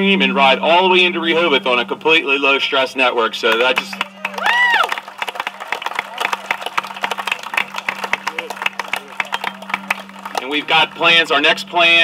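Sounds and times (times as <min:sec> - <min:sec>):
crowd clapping: 0:03.5 - 0:12.0
person whooping: 0:04.3 - 0:05.0.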